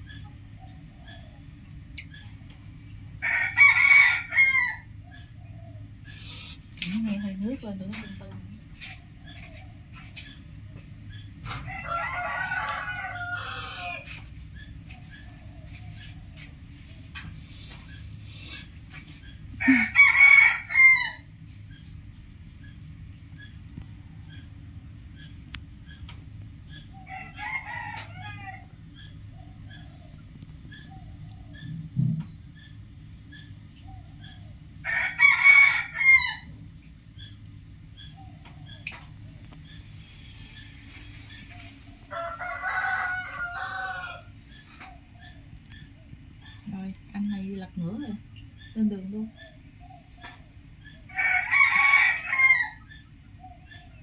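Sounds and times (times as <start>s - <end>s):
steady low hum: 0.0s - 34.9s, 36.4s - 51.5s
rooster crowing: 3.2s - 5.2s, 11.4s - 16.2s, 18.9s - 21.4s, 26.9s - 28.9s, 34.8s - 36.6s, 40.5s - 45.9s, 50.7s - 54.0s.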